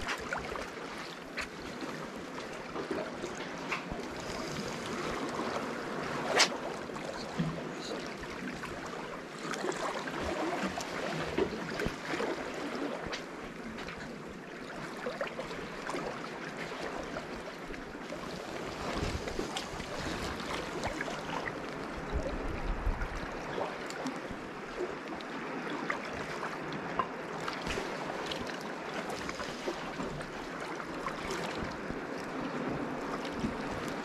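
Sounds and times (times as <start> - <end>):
sea water lapping and splashing: 0.0 - 34.0.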